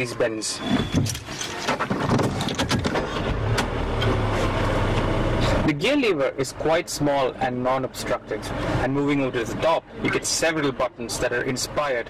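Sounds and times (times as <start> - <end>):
car engine starting and idling: 0.0 - 11.5.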